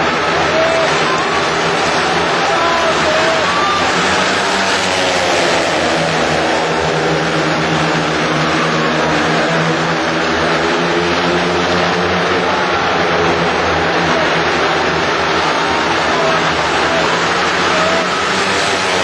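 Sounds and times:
motorcycle engines racing: 0.0 - 19.0.

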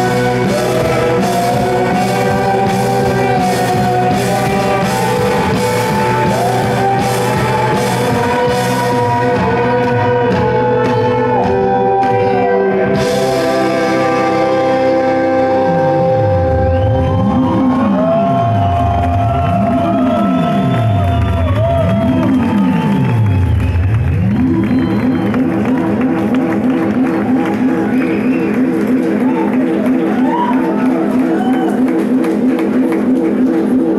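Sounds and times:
low synth tone sweeping in pitch: 10.5 - 30.1
fast pulsing synth pattern: 19.5 - 33.9.

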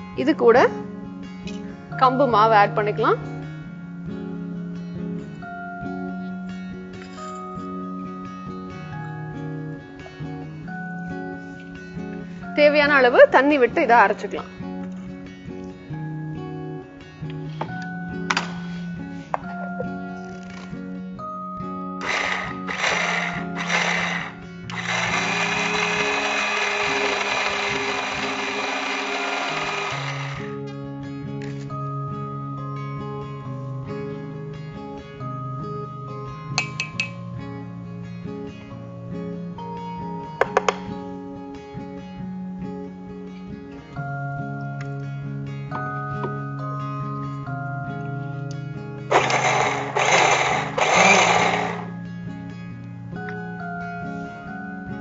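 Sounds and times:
background music sustained tones: 0.0 - 55.0
mixer grinder grinding: 22.0 - 30.6, 49.1 - 52.0.

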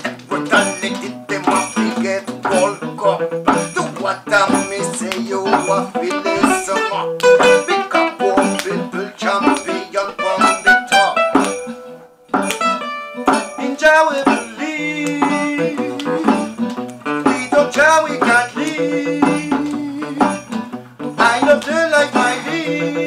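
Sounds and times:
acoustic guitar strumming: 0.0 - 23.0
hand drum percussion: 7.4 - 8.7, 10.4 - 21.6.

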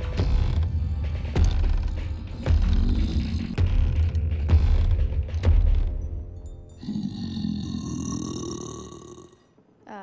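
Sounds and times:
deep gravelly grunt: 2.3 - 3.8.

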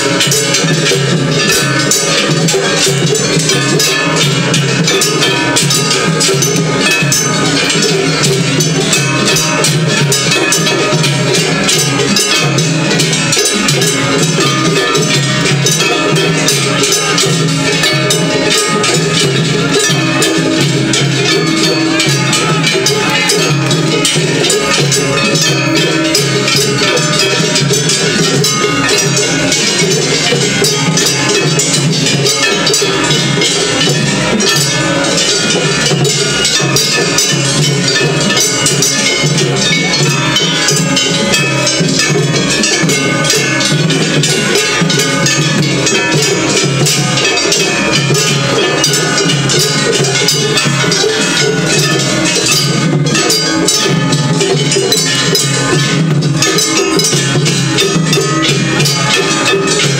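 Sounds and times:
brass gongs struck rhythmically: 0.0 - 59.9
taiko drums: 0.0 - 59.9.

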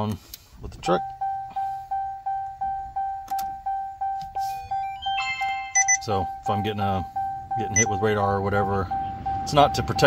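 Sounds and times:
electronic chime dinging: 0.9 - 9.2
high-pitched beeps: 0.9 - 9.9.

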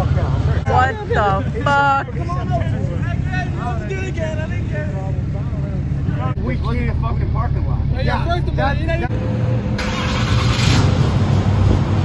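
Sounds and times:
people talking: 0.0 - 9.1
truck engine rumbling: 0.0 - 12.0.

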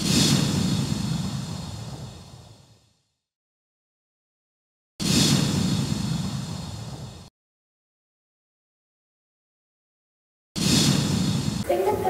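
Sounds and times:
whoosh: 0.0 - 3.0, 5.0 - 7.3, 10.6 - 11.7.

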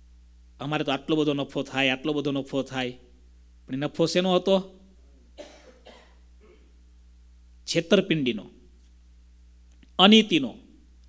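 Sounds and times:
person coughing: 5.4 - 6.8.

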